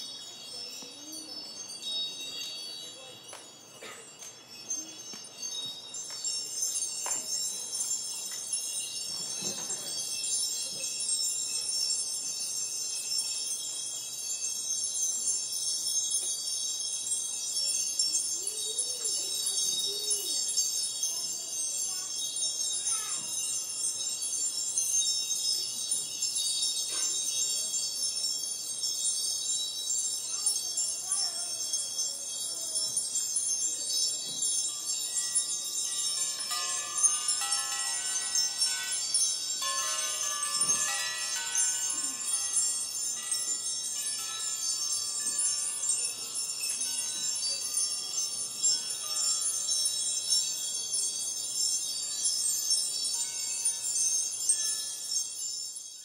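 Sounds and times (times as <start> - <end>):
chimes ringing: 0.0 - 56.0.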